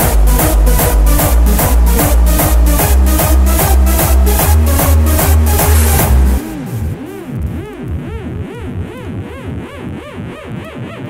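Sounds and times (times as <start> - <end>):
synth swoops: 0.0 - 9.5.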